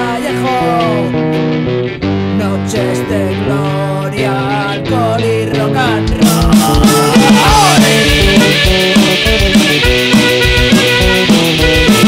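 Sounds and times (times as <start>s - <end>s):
electric guitars and bass chords: 0.0s - 12.0s.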